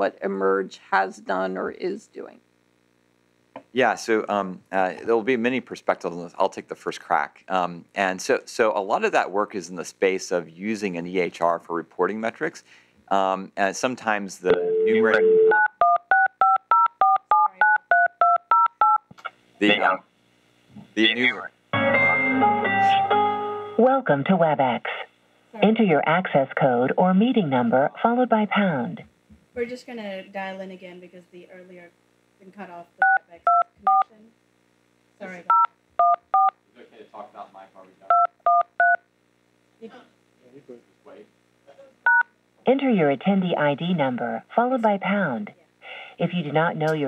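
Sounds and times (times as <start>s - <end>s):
person speaking: 3.6s - 15.3s, 19.2s - 20.0s, 20.7s - 23.1s, 25.6s - 29.1s, 35.2s - 35.6s, 42.7s - 47.0s
telephone keypad dialling beeps: 14.6s - 19.0s, 35.5s - 36.5s, 38.1s - 39.0s, 42.1s - 42.3s.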